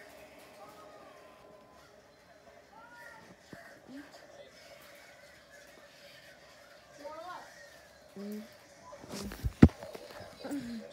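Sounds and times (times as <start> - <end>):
faint hushed voice murmuring: 0.5 - 10.9.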